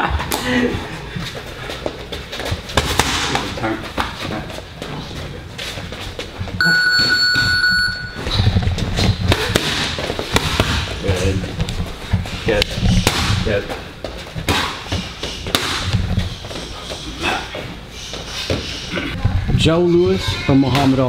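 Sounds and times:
boxing gloves smacking mitts: 2.4 - 4.4, 8.8 - 11.8, 12.9 - 17.0
electronic timer beep: 6.6 - 8.2.

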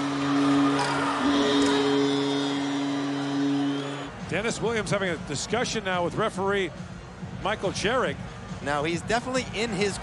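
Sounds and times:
arena music over public address: 0.0 - 10.0.

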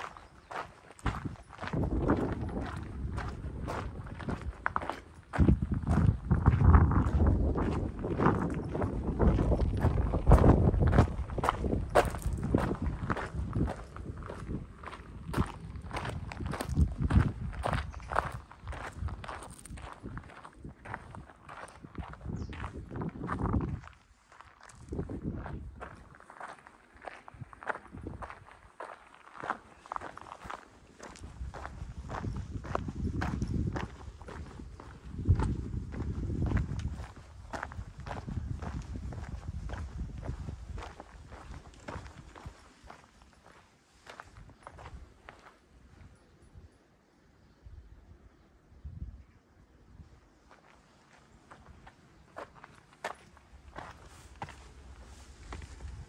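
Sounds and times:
wind buffeting microphone: 0.0 - 26.5, 27.1 - 46.7, 53.1 - 56.0
footsteps on gravel: 0.0 - 45.6, 50.4 - 56.0.

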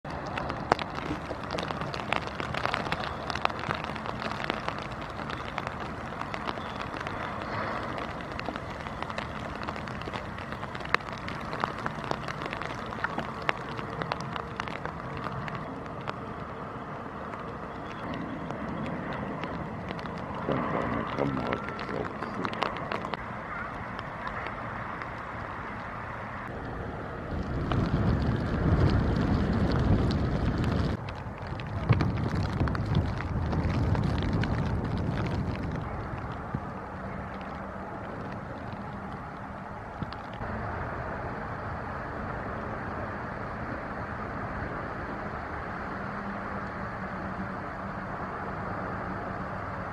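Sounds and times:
raindrops clicking near microphone: 0.0 - 40.7, 41.6 - 49.9
rain hissing: 0.0 - 49.9.

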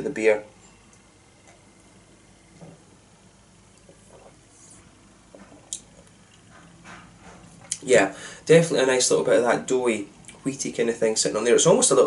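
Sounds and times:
person sipping beer: 3.7 - 6.5.

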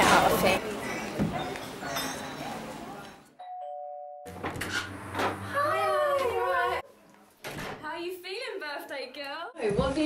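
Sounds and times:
two-tone doorbell chime: 3.4 - 4.4.

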